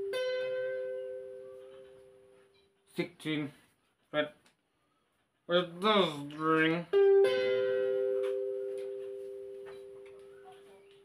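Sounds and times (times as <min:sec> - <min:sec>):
electric guitar notes ringing: 0:00.0 - 0:02.1, 0:06.9 - 0:10.5.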